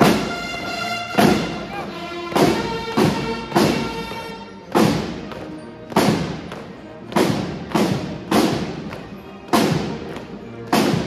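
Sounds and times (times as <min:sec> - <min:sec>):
marching side drums beating: 0:00.0 - 0:11.0.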